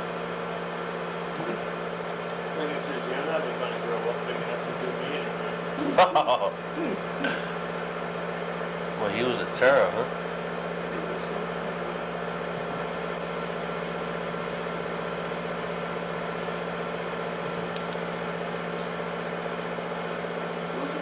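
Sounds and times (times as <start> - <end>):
projector machine hum: 0.0 - 21.0.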